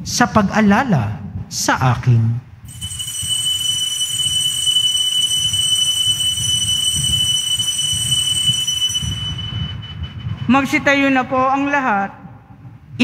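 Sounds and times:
high-pitched altar bells ringing: 2.7s - 10.5s.

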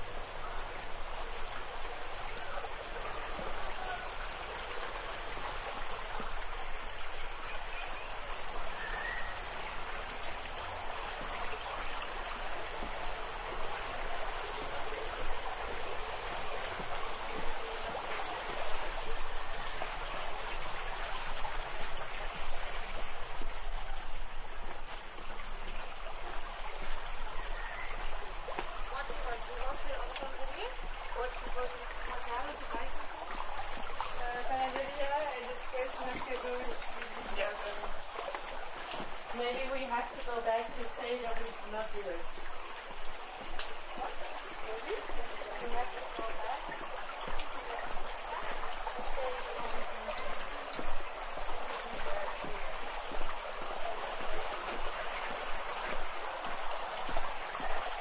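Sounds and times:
water running in a channel: 0.0s - 58.0s
voices: 2.3s - 4.8s, 28.6s - 38.4s, 39.3s - 42.3s, 43.9s - 46.8s, 47.6s - 50.6s.

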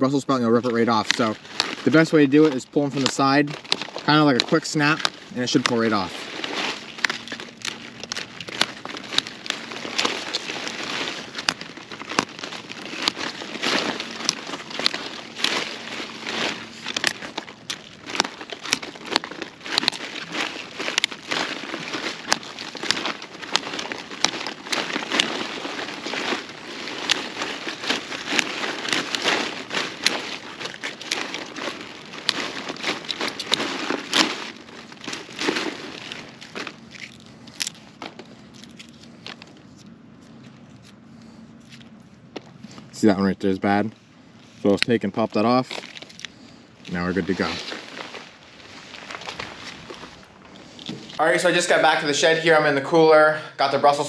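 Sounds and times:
leafy rustling: 0.0s - 54.0s
leaves snapping off stalk: 0.6s - 39.9s.

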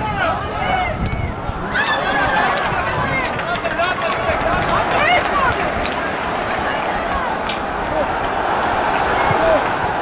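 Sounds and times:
distant people shouting: 0.0s - 10.0s
wind rumbling on microphone: 0.0s - 10.0s.

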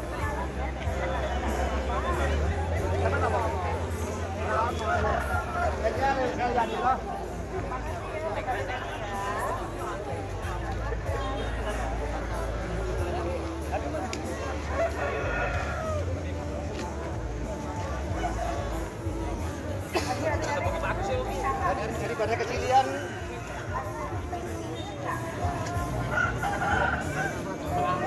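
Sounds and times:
people talking: 0.0s - 28.0s
rooster crowing: 26.1s - 27.4s.

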